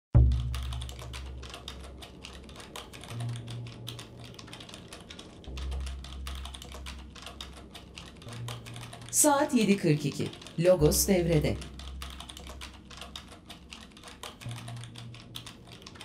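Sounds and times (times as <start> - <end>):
typing on computer keyboard: 0.2 - 16.0.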